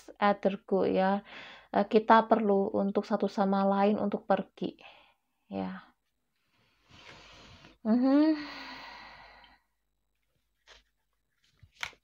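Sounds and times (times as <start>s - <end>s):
woman's breathy sigh: 7.0s - 9.7s.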